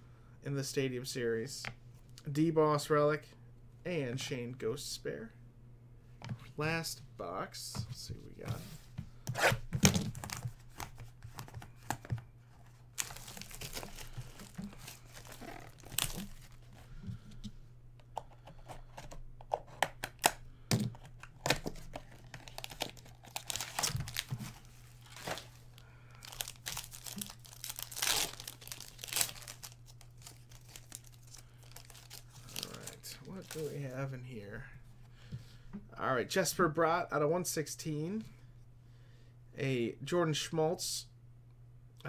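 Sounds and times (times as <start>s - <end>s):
steady low hum: 0.0s - 42.0s
plastic wrapper crackling: 12.9s - 16.6s, 22.2s - 33.7s.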